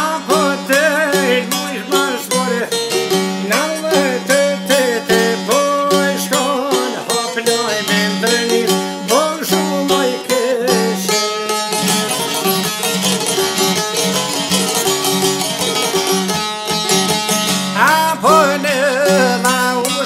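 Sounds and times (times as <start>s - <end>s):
plucked lutes playing folk music: 0.0s - 20.0s.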